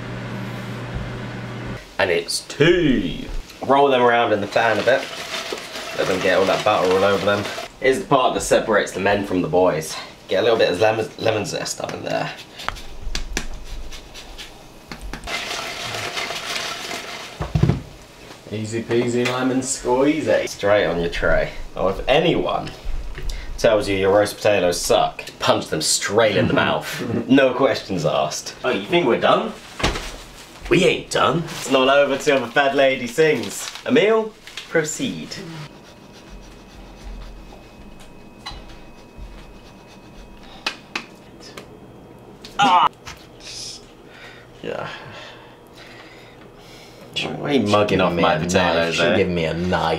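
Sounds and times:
cheese scraping on metal grater: 0:04.4 - 0:07.7.

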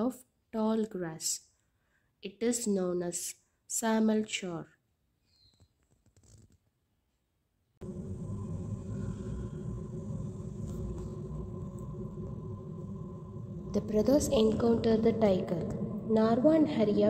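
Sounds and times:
steady background hum and hiss: 0:07.8 - 0:17.0.

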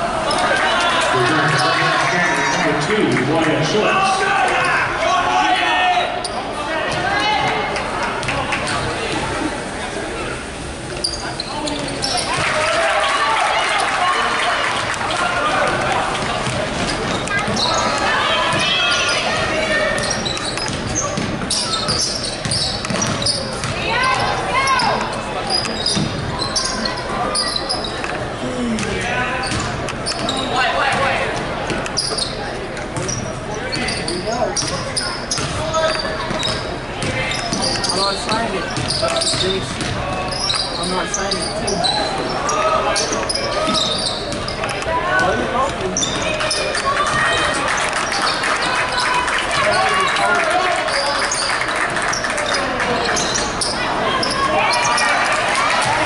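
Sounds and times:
crowd and player voices: 0:00.0 - 0:56.0.

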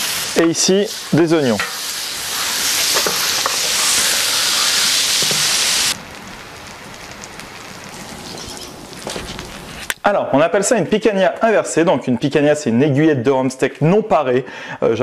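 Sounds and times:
bacon sizzling on hot plate: 0:00.0 - 0:09.9.

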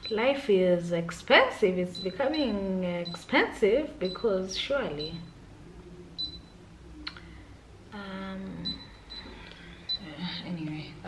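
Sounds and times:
faint low hum: 0:00.0 - 0:11.0
high electronic beep: 0:06.2 - 0:06.6.

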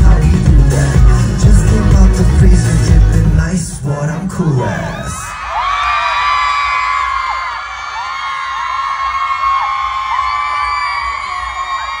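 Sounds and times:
crowd cheering and screaming: 0:04.6 - 0:12.0.

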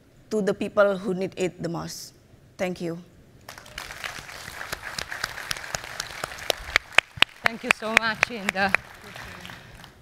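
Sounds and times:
audience applauding: 0:03.5 - 0:10.0
sharp nearby claps: 0:03.5 - 0:10.0.

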